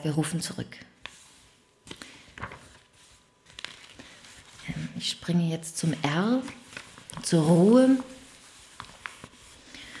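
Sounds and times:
book pages rustling: 1.0 - 5.2, 5.8 - 9.7.

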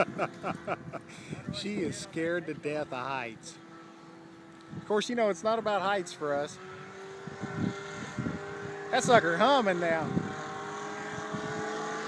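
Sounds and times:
wind rumbling on microphone: 0.0 - 3.3, 4.6 - 5.0, 6.7 - 12.0
engine and propeller humming: 0.0 - 12.0.

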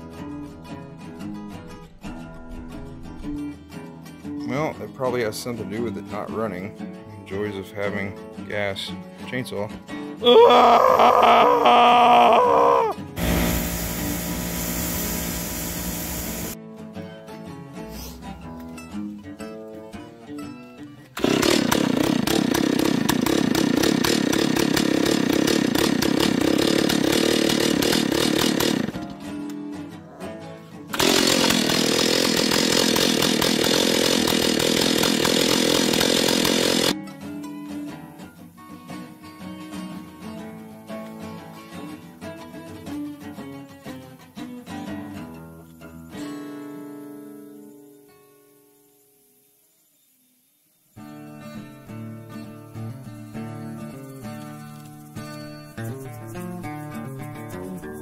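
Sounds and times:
chainsaw running: 10.2 - 16.6, 21.2 - 29.2, 30.9 - 37.0
bench grinder grinding: 13.2 - 16.6, 21.2 - 29.2, 31.0 - 37.0.

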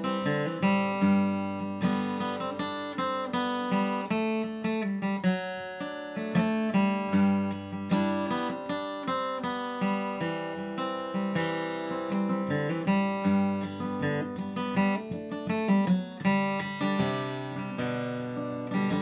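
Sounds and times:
acoustic guitar flatpicked: 0.0 - 19.0.

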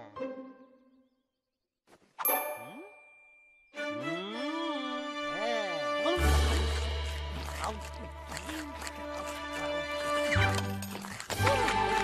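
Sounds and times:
sharp metallic ding: 2.2 - 3.6.

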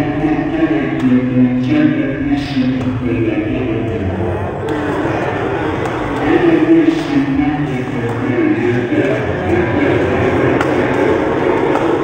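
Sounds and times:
person talking: 0.0 - 11.0
loud hall ambience: 0.0 - 12.0.

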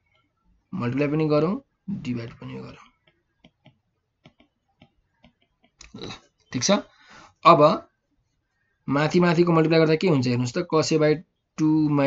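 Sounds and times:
stylus tapping on pen tablet: 3.0 - 5.8.

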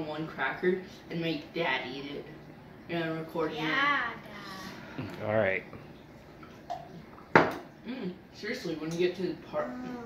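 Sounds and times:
plastic cup knocking on countertop: 6.7 - 7.6.

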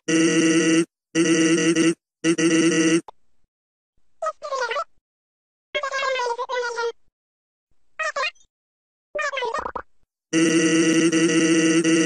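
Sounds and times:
buzzy steady-pitched tone: 10.4 - 12.0.

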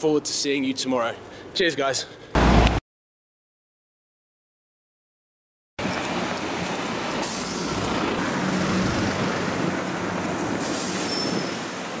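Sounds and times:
traffic engine rumble: 5.8 - 12.0
bus air brake hiss: 7.2 - 7.8, 10.6 - 11.8.

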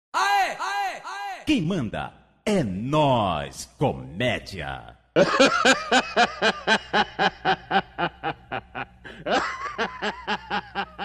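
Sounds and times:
rapid laughter: 5.2 - 11.0.

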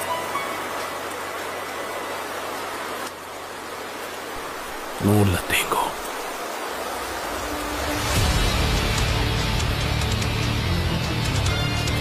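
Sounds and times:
rain falling: 0.0 - 12.0.

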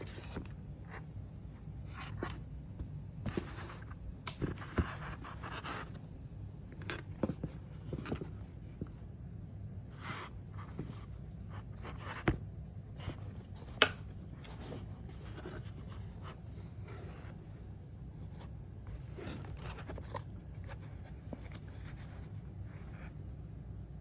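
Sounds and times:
sneaker rustling in hands: 10.0 - 23.2.

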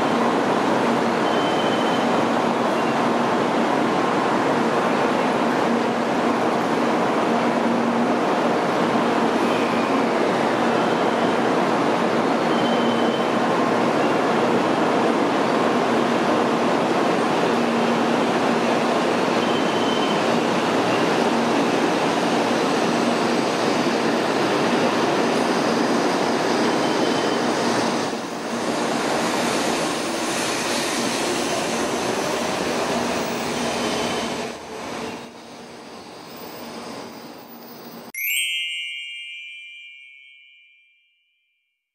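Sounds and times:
train rushing past: 0.0 - 38.1
short bright chime: 38.2 - 41.4.

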